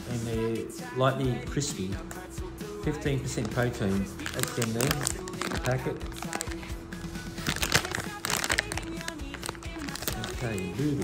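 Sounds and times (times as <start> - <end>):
background song: 0.0 - 11.0
plastic snack packet crinkling: 3.2 - 6.8, 7.4 - 11.0.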